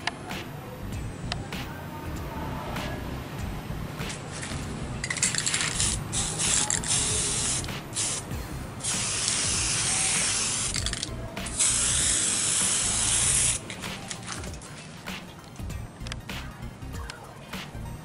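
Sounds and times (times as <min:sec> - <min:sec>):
spray-paint can hissing: 0:04.1 - 0:14.6.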